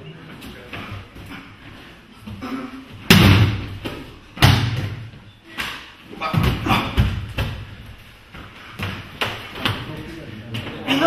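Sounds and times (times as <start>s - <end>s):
body slapping onto mats: 3.0s - 7.8s.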